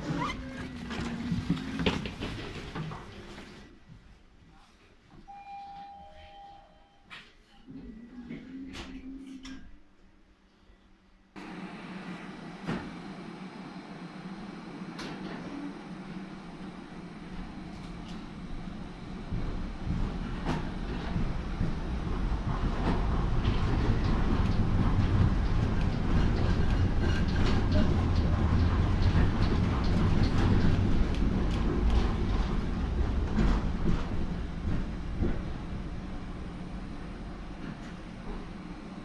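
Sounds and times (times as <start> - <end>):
tram motors rumbling: 0.0 - 3.6, 11.4 - 39.0
wheels clacking on track: 19.3 - 36.5.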